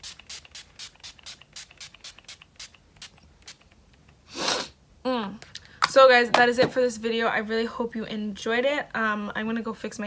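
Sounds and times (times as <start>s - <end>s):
spray bottle pumping puffs: 0.0s - 3.8s.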